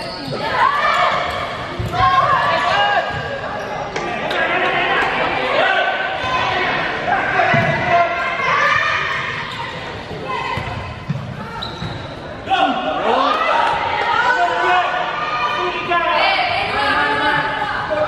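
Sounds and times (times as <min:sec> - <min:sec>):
players and spectators calling out: 0:00.0 - 0:18.0
ball bouncing on court: 0:01.2 - 0:04.1, 0:07.5 - 0:07.9, 0:10.0 - 0:12.1.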